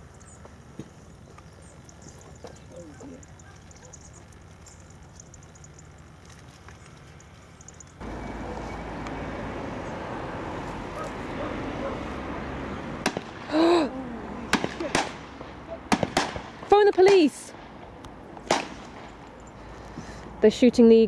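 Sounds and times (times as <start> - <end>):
outdoor background noise: 0.0 - 21.0.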